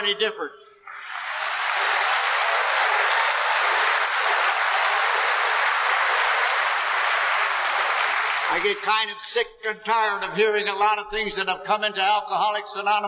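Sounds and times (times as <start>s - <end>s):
audience applauding: 0.9s - 8.8s.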